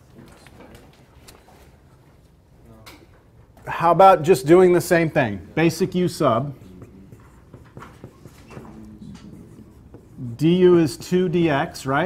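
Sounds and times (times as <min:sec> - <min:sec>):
low room hum: 0:00.0 - 0:12.0
pen writing on a board: 0:05.8 - 0:11.6.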